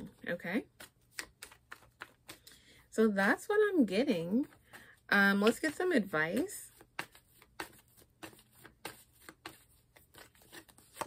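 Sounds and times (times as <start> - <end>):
cards being shuffled by hand: 0.0 - 2.7, 3.4 - 11.0.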